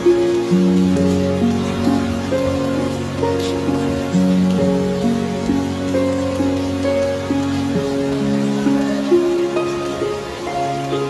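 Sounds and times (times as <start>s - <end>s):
rain on wet surface: 0.0s - 11.0s
slow soft piano music: 0.0s - 11.0s.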